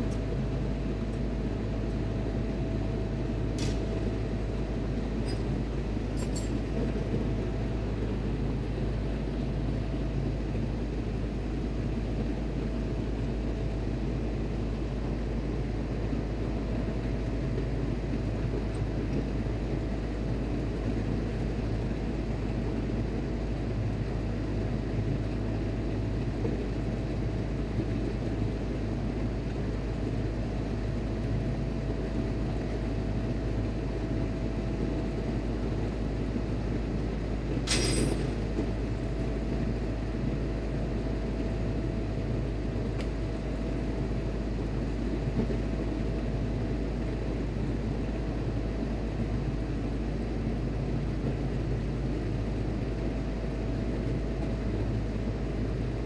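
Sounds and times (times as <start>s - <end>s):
faint constant whine: 0.0s - 56.0s.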